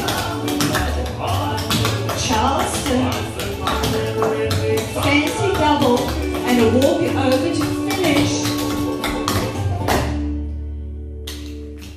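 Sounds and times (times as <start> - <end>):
recorded song: 0.0 - 11.9.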